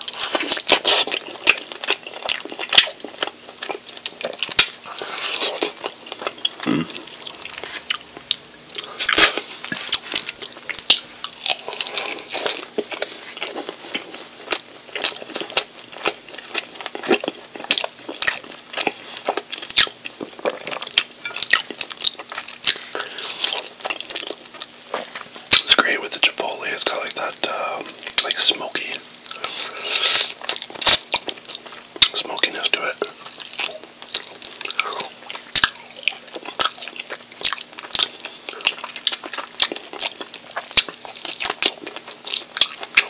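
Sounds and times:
chewing and biting food: 0.0 - 43.0.

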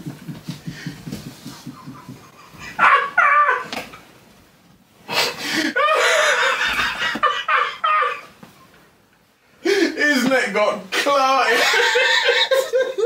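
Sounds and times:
men laughing: 0.0 - 3.7, 5.4 - 8.4, 11.4 - 13.0.

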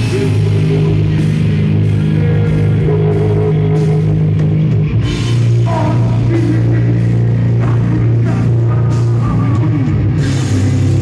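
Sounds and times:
live heavy rock band: 0.0 - 11.0.

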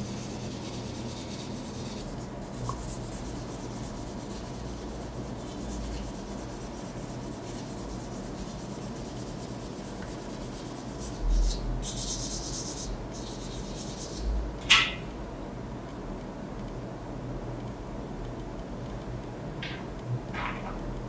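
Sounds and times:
abrasive paper rubbing on metal: 0.0 - 14.3.

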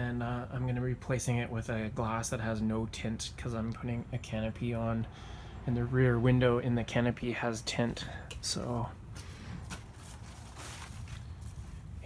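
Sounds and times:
footsteps on grass: 9.2 - 11.9.

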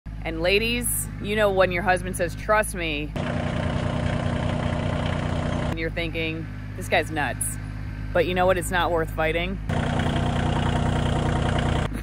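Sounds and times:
tractor engine idling: 0.1 - 12.0.

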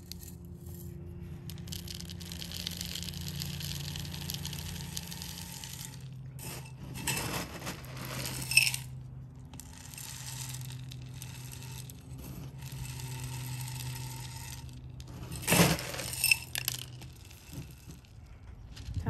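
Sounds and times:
low steady hum: 0.0 - 19.0
potting mix trickling from scoop: 1.5 - 8.9, 9.5 - 18.1.

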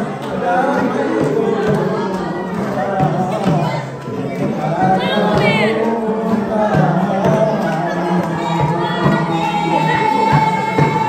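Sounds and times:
group singing: 0.0 - 11.0
man singing into microphone: 0.0 - 11.0.

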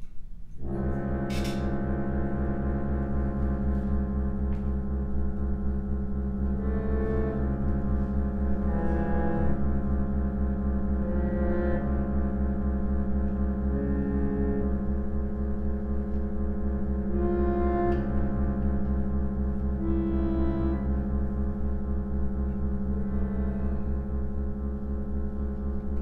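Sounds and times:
reed organs playing counterpoint: 0.6 - 26.0.

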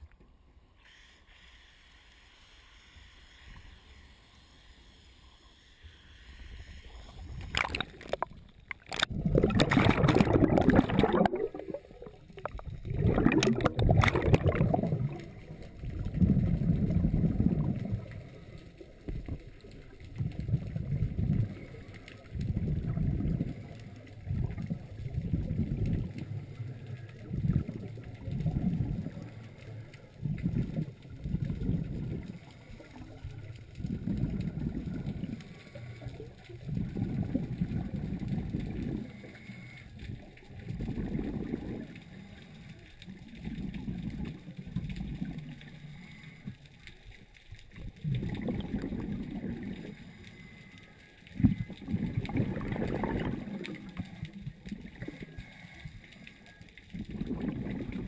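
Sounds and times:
scuba regulator bubbles gurgling: 6.8 - 58.0
water rushing over camera housing: 7.1 - 18.3.

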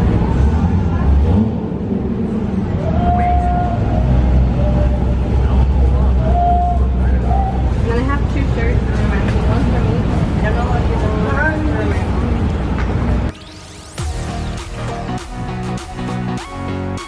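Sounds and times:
indistinct voices: 0.0 - 13.3
road traffic rumble: 0.0 - 17.0.

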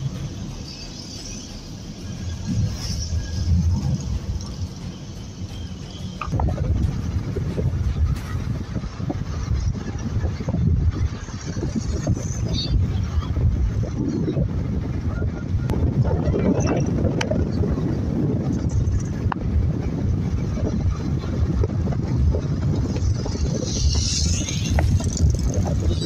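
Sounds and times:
car road and engine rumble: 0.0 - 26.0
wind noise on microphone: 0.0 - 26.0.

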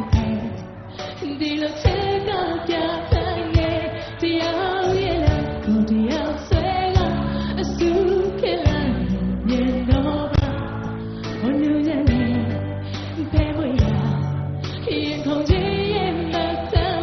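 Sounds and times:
band playing: 0.0 - 3.9
woman singing: 0.0 - 17.0.

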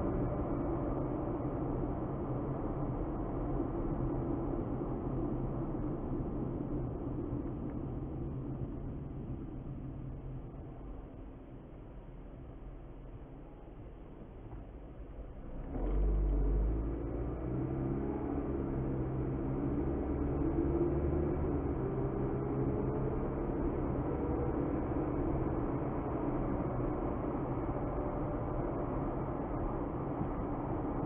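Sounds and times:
road noise inside car: 0.0 - 31.0
car engine accelerating: 15.4 - 29.0.

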